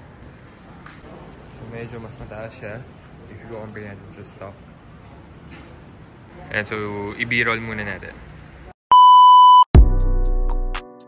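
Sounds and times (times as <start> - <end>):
high electronic beep: 8.9 - 9.7.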